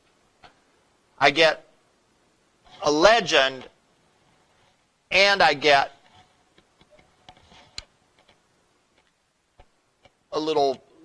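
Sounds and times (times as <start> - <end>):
faint clicks and taps: 6.0 - 10.9.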